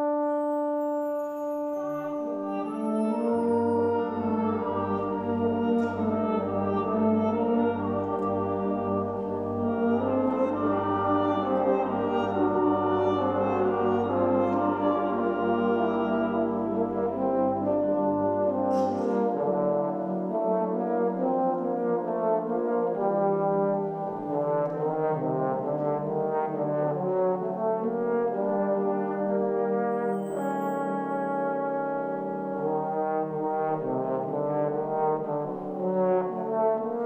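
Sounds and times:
brass band playing slow music: 0.0 - 37.0.

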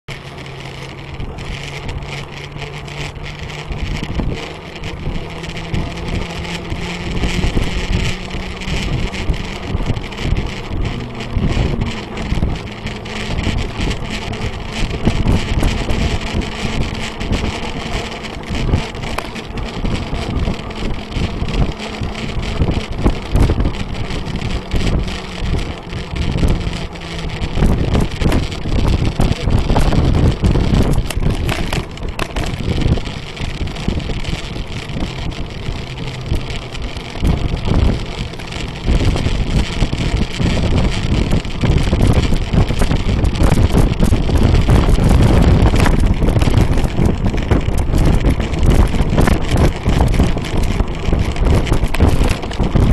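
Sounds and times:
bicycle tyres and frame rattling: 0.1 - 52.9
low steady hum: 0.1 - 52.9
wind buffeting microphone: 0.1 - 52.9.

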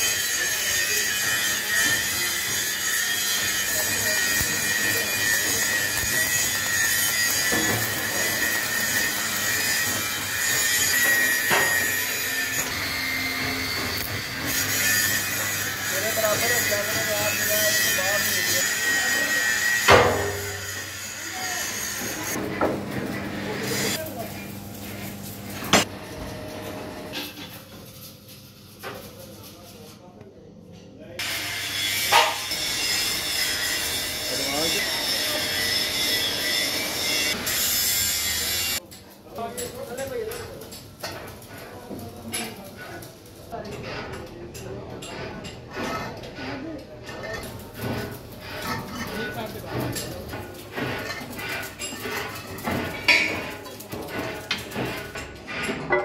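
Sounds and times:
arc welding crackling and hissing: 0.0 - 30.0, 31.2 - 43.6, 46.8 - 55.4
plate-rolling machine humming: 0.6 - 27.7.

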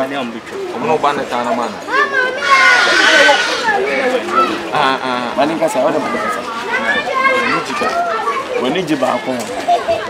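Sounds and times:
voices talking: 0.4 - 8.6.

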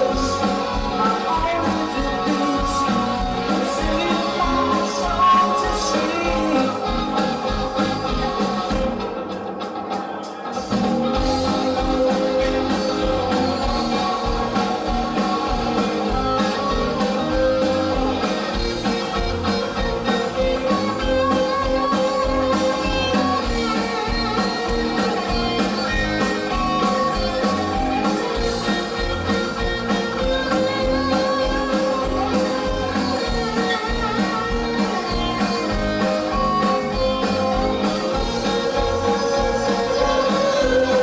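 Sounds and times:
person singing: 0.0 - 8.9, 10.7 - 41.0
bass guitar: 0.0 - 41.0
drum kit beat: 0.0 - 41.0
electric guitars: 0.0 - 41.0.

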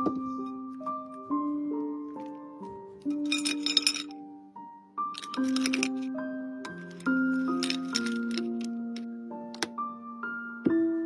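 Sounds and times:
piano-like background music: 0.0 - 11.0
biscuit sticks clinking on plate: 3.2 - 4.1, 5.2 - 6.1, 6.7 - 8.7.

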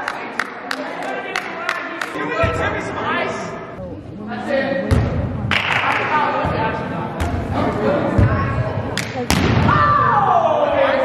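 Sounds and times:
players chattering: 0.0 - 9.4
volleyball being hit: 9.0 - 9.8.

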